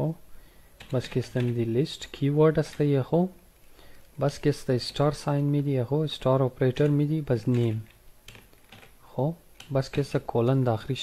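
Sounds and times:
computer keyboard keystrokes: 0:00.8 - 0:01.6
man talking: 0:00.9 - 0:03.4, 0:04.2 - 0:07.9, 0:09.1 - 0:11.0.

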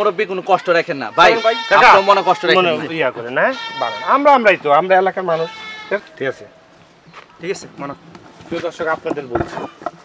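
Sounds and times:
man wailing speech: 0:00.4 - 0:04.5.

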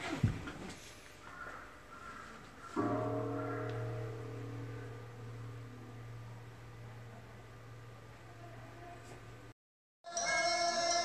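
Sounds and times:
low ringing tone: 0:02.8 - 0:08.6, 0:10.1 - 0:11.0.

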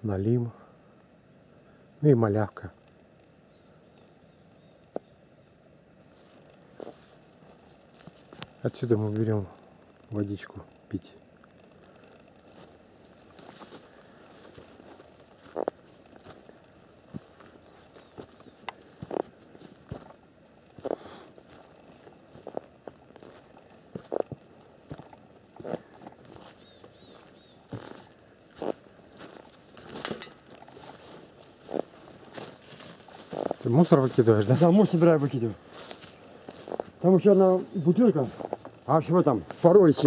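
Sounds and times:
footsteps crunching dry grass: 0:06.0 - 0:10.2, 0:11.5 - 0:40.0.

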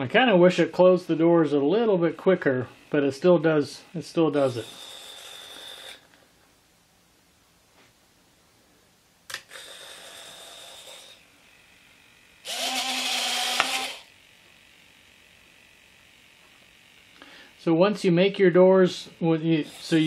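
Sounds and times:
servo high electric whine: 0:00.0 - 0:06.4, 0:09.3 - 0:20.0
geared motor whine: 0:00.5 - 0:06.3, 0:09.3 - 0:20.0
servo clicks: 0:12.4 - 0:14.1.

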